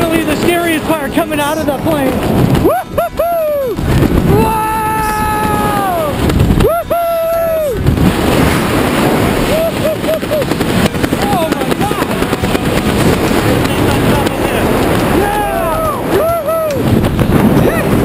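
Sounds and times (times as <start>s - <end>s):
wind rush on microphone: 0.0s - 18.0s
person whooping: 2.6s - 7.8s, 9.4s - 10.5s, 15.1s - 16.9s.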